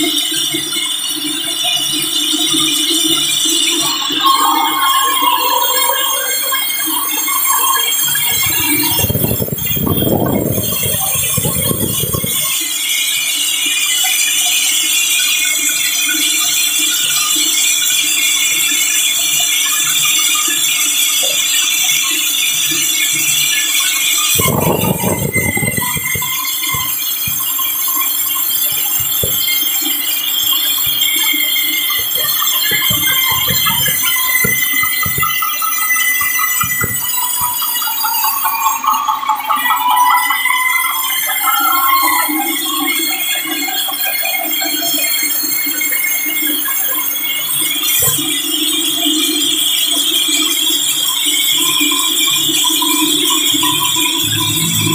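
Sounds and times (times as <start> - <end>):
scattered knocks: 24.3 - 43.0
low rumble: 54.2 - 54.9.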